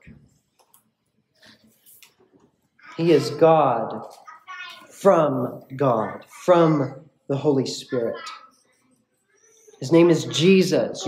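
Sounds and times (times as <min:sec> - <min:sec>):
soft breaths: 0:01.3 - 0:02.4
person speaking: 0:02.8 - 0:08.7, 0:09.8 - 0:11.0.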